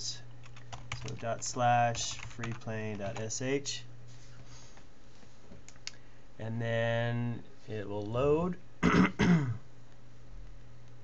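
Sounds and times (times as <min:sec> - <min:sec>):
steady low hum: 0:00.0 - 0:11.0
man clearing his throat: 0:08.8 - 0:09.7.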